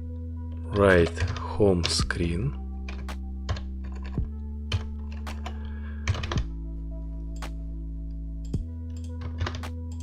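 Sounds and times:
background music with low notes: 0.0 - 10.0
computer keyboard keystrokes: 0.7 - 2.0, 2.9 - 6.5, 8.5 - 10.0.

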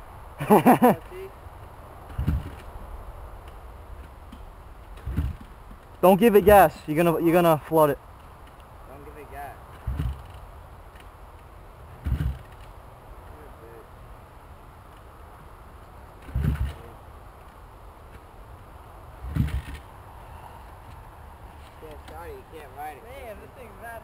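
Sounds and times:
engine kickstart thumps: 12.0 - 12.6, 16.2 - 16.8.

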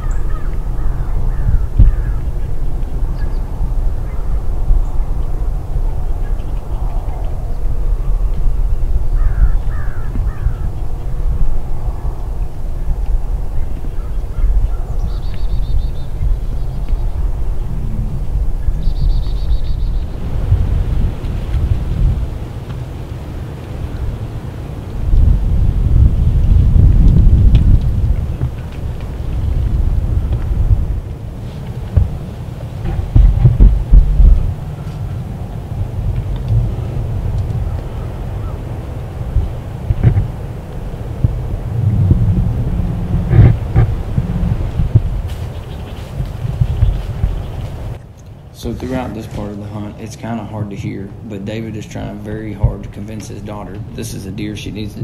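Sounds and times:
low uneven rumbling: 0.0 - 55.0.

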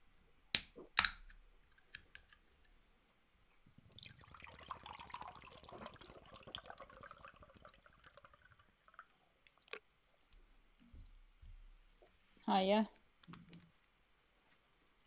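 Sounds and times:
liquid trickling: 3.7 - 9.9.

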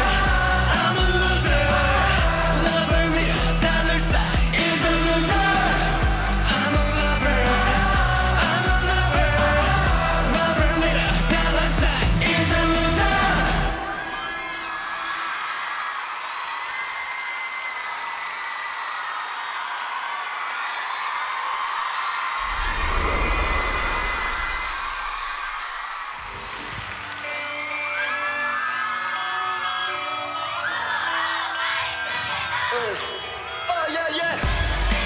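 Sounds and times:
pop song: 0.0 - 15.5, 28.2 - 35.0
audience screaming and cheering: 0.0 - 33.4
low rumble: 22.4 - 26.1.

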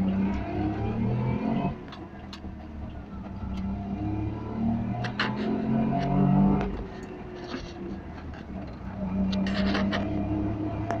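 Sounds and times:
two-stroke car engine running: 0.0 - 11.0.

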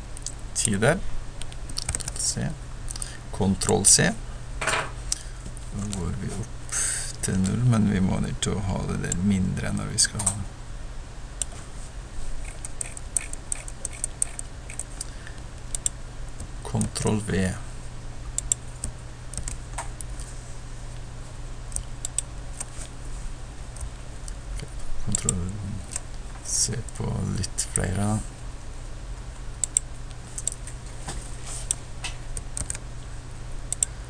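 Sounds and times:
low steady hum: 0.0 - 34.0
keyboard and mouse clicks: 1.4 - 2.2, 12.4 - 15.1, 15.7 - 15.9, 18.4 - 19.6, 29.6 - 30.6, 31.7 - 32.8
mouse scroll wheel clicking: 12.4 - 14.9.

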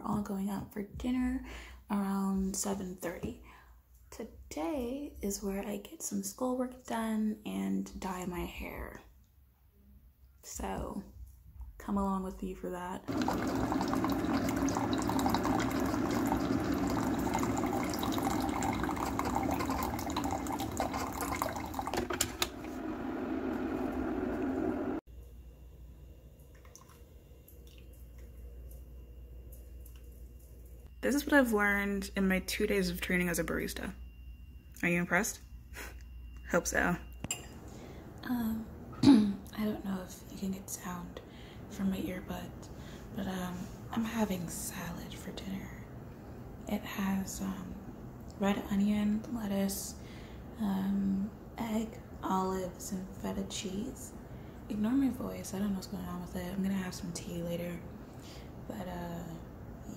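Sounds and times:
woman speaking softly: 0.0 - 3.4, 38.2 - 42.6, 58.7 - 59.9
coffee brewer pump hum: 13.0 - 25.6
coffee running into cup: 13.1 - 25.0.

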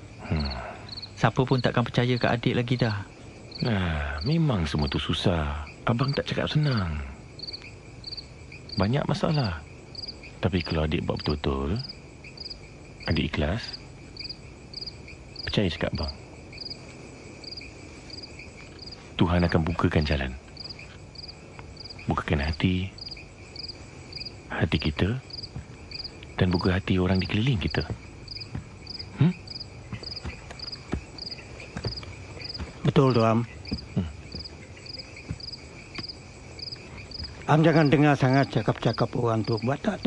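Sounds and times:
crickets chirping: 0.0 - 40.0.

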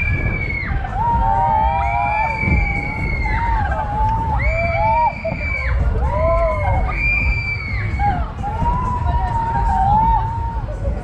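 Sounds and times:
riders screaming and whooping: 0.0 - 11.0
wind rumble on microphone: 0.0 - 11.0.

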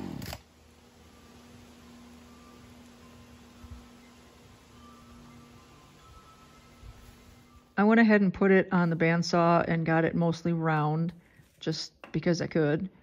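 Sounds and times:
chainsaw engine winding down: 0.0 - 6.5
faint steady hum: 0.0 - 13.0.

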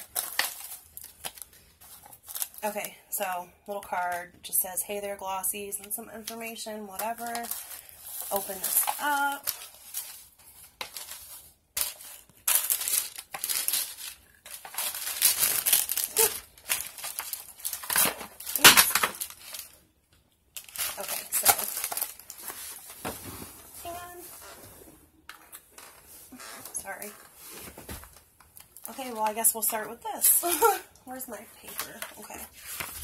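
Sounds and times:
paper packing crinkling and rustling: 0.0 - 3.0, 6.2 - 19.8, 20.5 - 24.6, 25.5 - 33.0.

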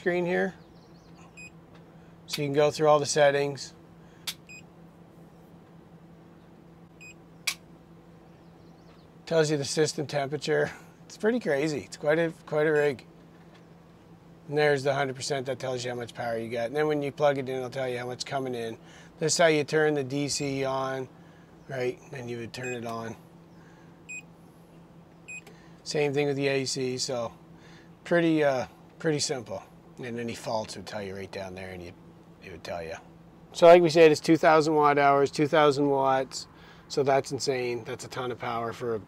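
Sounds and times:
faint low hum: 0.0 - 39.0
sharp click: 7.4 - 7.7.

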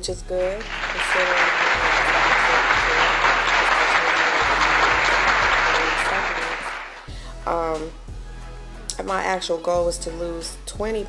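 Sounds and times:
crowd applause: 0.6 - 7.1.

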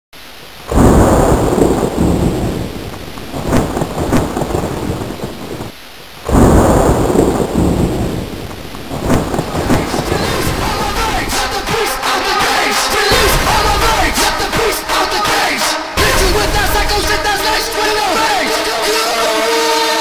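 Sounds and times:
rain hiss: 0.2 - 20.0
rolling thunderclaps: 0.6 - 18.6.

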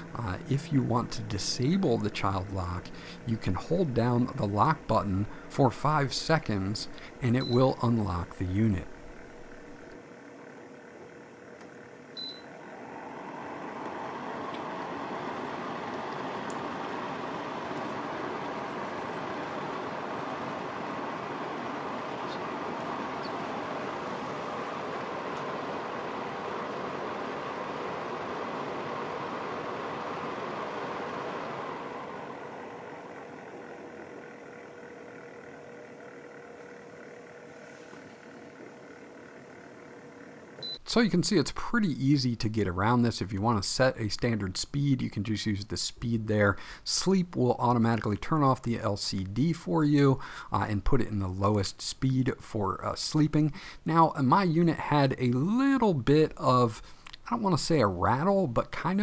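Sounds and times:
air purifier fan rushing: 0.0 - 59.0
touch panel beep: 7.4 - 7.8, 12.2 - 12.5, 40.6 - 40.8.

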